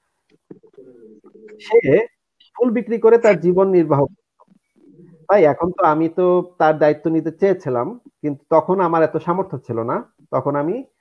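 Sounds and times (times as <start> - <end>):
bird cooing: 0.5 - 2.0, 4.7 - 5.3.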